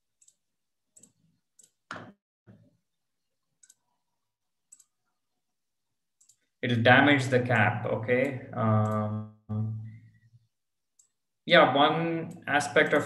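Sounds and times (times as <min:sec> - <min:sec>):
computer clicks: 0:06.2 - 0:06.5, 0:08.1 - 0:09.2.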